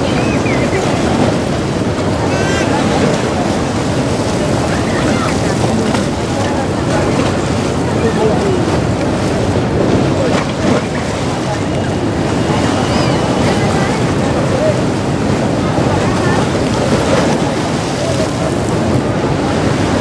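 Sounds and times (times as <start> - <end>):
crowd chatter: 0.0 - 20.0
river water rushing: 0.0 - 20.0.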